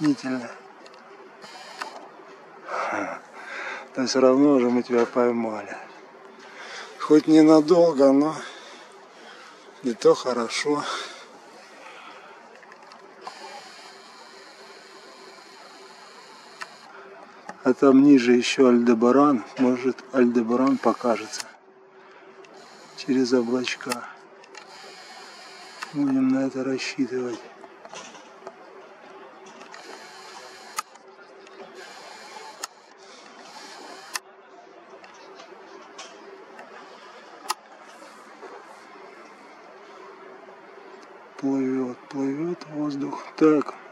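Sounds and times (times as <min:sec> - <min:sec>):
camera zoom motor whirring: 0:00.0 - 0:02.2, 0:12.6 - 0:17.7, 0:20.2 - 0:21.6, 0:22.4 - 0:26.5, 0:29.4 - 0:34.3
steady hiss: 0:00.0 - 0:27.5, 0:28.9 - 0:34.6
camera clicks: 0:00.8 - 0:02.1, 0:20.7 - 0:21.5.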